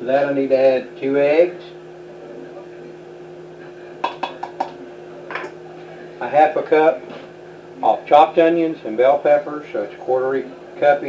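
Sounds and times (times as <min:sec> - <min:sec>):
steady low hum: 0:00.0 - 0:11.0
plastic cup knocking steel bowl: 0:04.0 - 0:05.5.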